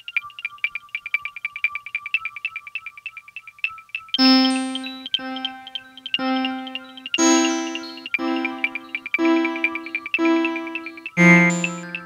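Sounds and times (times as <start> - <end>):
synthesizer beeping blips: 4.2 - 12.0.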